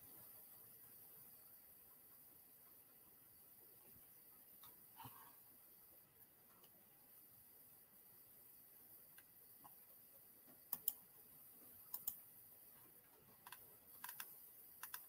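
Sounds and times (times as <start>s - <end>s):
keyboard typing clicks: 10.7s - 11.0s, 11.9s - 12.2s, 13.4s - 15.0s.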